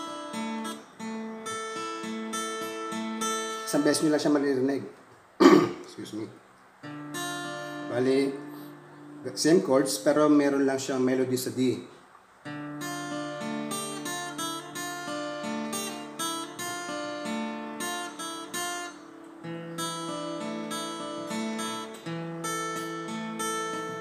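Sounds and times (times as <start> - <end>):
acoustic guitar fingerpicked: 0.0 - 4.4, 5.4 - 10.5, 11.8 - 24.0.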